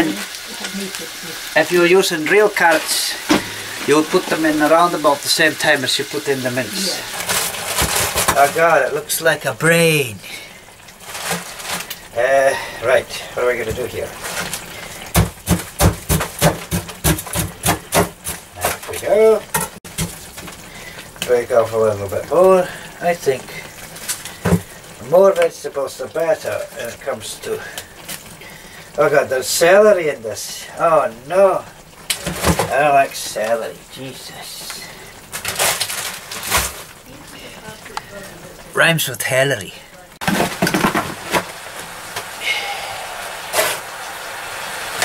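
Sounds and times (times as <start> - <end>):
utensil knocking frozen food: 15.1 - 18.4
plastic bag crinkling: 35.4 - 36.8.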